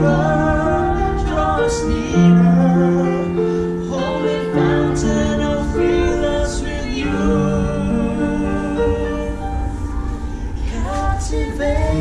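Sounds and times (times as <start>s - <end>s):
person singing: 0.0s - 9.8s, 10.6s - 12.0s
digital piano chords: 0.0s - 12.0s.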